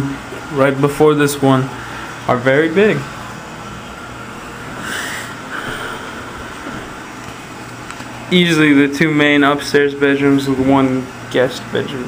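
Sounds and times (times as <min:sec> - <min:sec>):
indoor background hum and hiss: 0:00.0 - 0:12.0.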